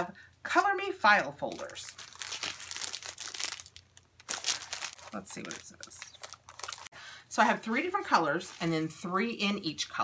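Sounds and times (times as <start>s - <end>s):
plastic wrapping crinkling: 1.4s - 6.9s, 7.6s - 9.5s.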